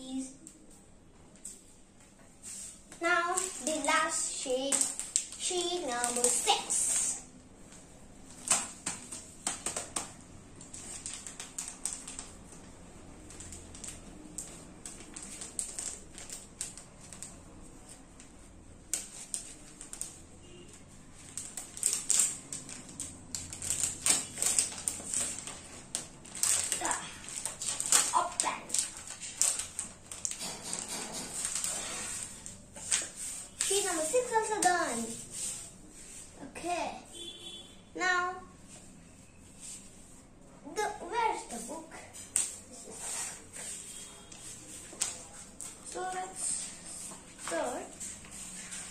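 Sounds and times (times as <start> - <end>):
child's voice: 0.0 - 0.5, 3.0 - 7.3, 26.7 - 27.2, 28.0 - 28.8, 33.7 - 35.2, 36.4 - 37.1, 38.0 - 38.6, 40.6 - 42.2, 45.9 - 48.0
plastic packaging crinkling: 3.2 - 7.1, 10.6 - 18.0, 21.0 - 35.5.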